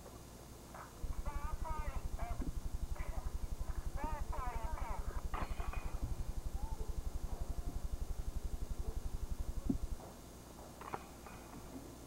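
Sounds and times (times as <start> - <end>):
low pulsing hum: 1.0 - 10.2
faint high voice-like calls: 1.1 - 10.0.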